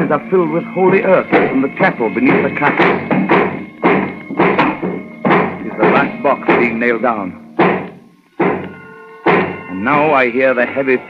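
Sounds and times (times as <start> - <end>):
heavy hammer blows on wood: 0.8 - 6.9, 7.5 - 9.9.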